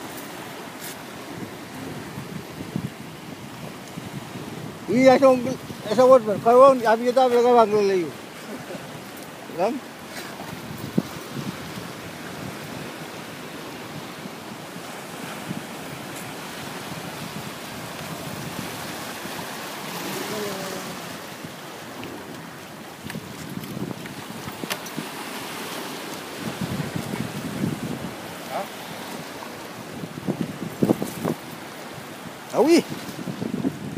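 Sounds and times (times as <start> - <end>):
surf washing over rocks: 0.0 - 33.9
wind buffeting microphone: 0.0 - 33.9.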